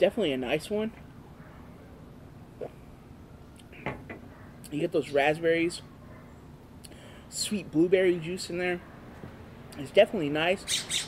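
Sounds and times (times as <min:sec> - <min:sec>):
low steady hiss: 0:00.0 - 0:10.7.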